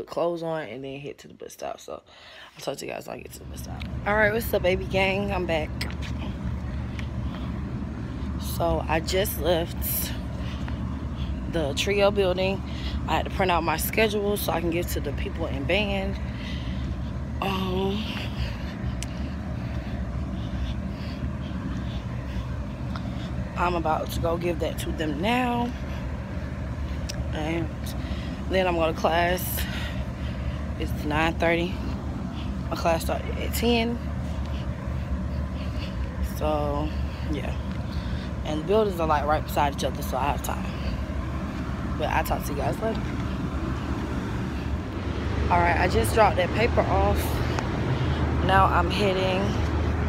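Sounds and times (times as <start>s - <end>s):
low outdoor rumble: 2.6s - 50.0s.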